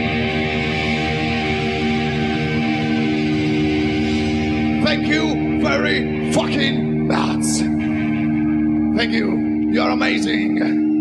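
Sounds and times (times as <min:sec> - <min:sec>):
electric guitar chord ringing: 0:00.0 - 0:11.0
heavy metal band playing live: 0:00.0 - 0:11.0.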